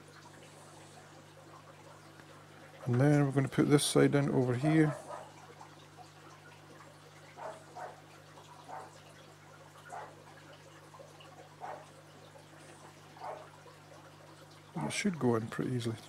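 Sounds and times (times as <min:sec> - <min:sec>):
faint low hum: 0:00.0 - 0:16.0
water dripping: 0:00.0 - 0:16.0.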